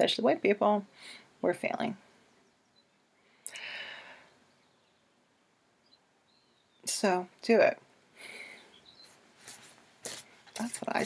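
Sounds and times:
woman's voice: 0.0 - 2.0, 6.9 - 7.8, 10.5 - 11.0.

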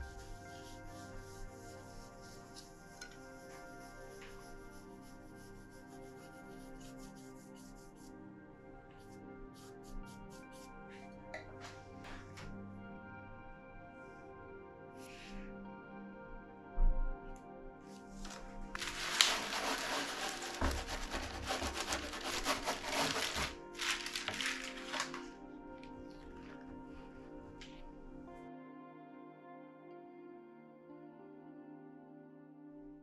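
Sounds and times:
baren rubbing on paper: 0.0 - 8.1, 18.1 - 25.3
brush scrubbing wooden block: 0.0 - 8.1, 18.2 - 25.3
background music: 0.0 - 33.0.

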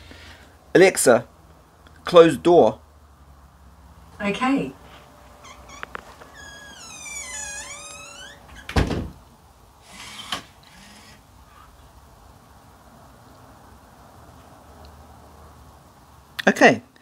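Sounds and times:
door squealing: 5.4 - 9.1
door thud closing: 5.5 - 9.2.

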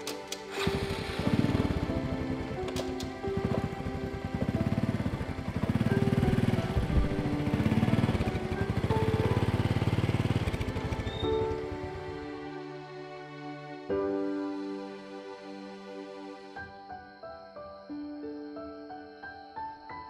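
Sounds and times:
soft background music: 0.0 - 20.0
motorcycle engine putter: 2.6 - 3.7.

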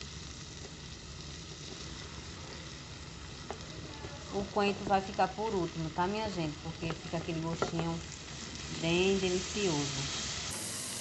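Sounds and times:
sausage and onion sizzling in oil: 0.0 - 11.0.

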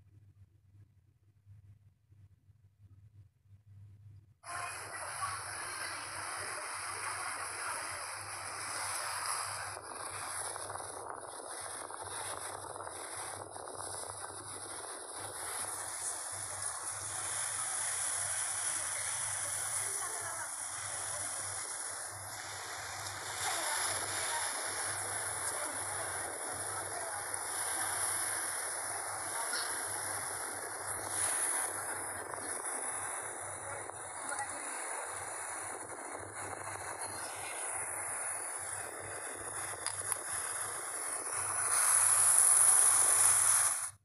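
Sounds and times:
faint low hum: 0.0 - 41.4.

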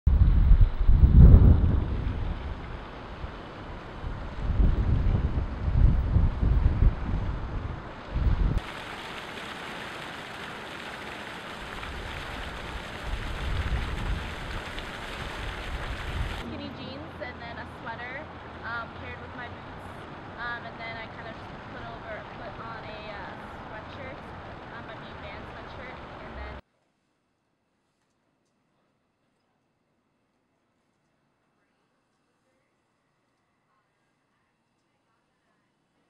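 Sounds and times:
wind buffeting microphone: 0.1 - 8.6, 11.8 - 16.5
fountain water splashing: 8.6 - 26.6.

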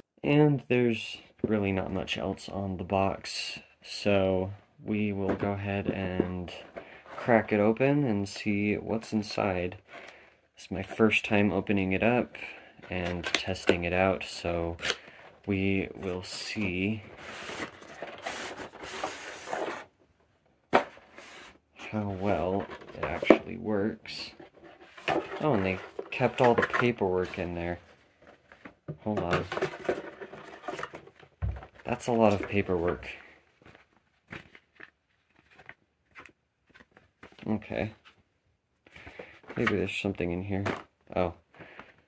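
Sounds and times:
cardboard and plastic tray scraping: 16.0 - 19.9, 20.7 - 28.4, 29.2 - 33.2
paper sheets rustling: 16.0 - 19.9, 29.4 - 38.2.

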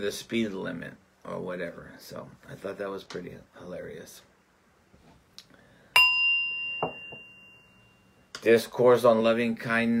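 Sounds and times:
meditation bell ringing: 6.0 - 8.3.

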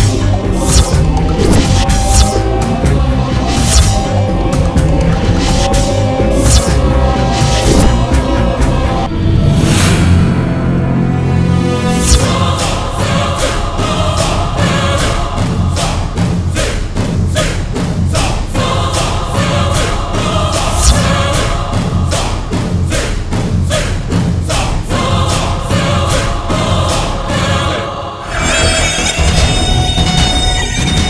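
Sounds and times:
percussion hits: 0.0 - 27.7
choir-like voices: 0.0 - 31.0.

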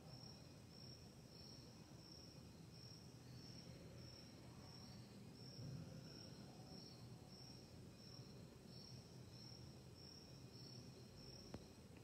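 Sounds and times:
insect chirping: 0.0 - 12.0
low room noise: 0.0 - 12.0.

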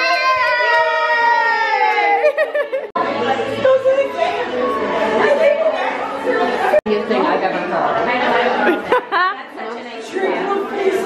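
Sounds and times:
women talking and exclaiming: 0.0 - 11.0.

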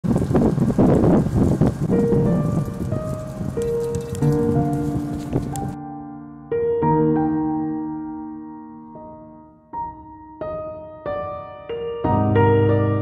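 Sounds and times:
dense crackling hiss: 0.0 - 5.8
soft piano music: 1.8 - 13.0.

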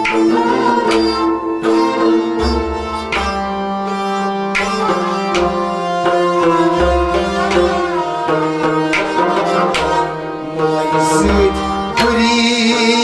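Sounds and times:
struck strings: 0.0 - 13.0
sustained melody: 0.0 - 13.0.

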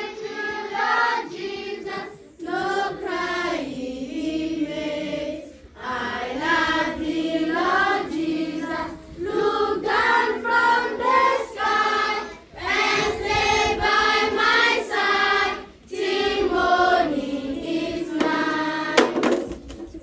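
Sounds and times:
children singing in unison: 0.0 - 19.1.

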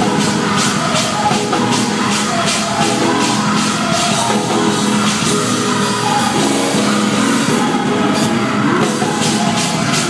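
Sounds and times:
gospel choir singing: 0.0 - 10.0
live band: 0.0 - 10.0
tambourine-like percussion beat: 0.0 - 10.0.

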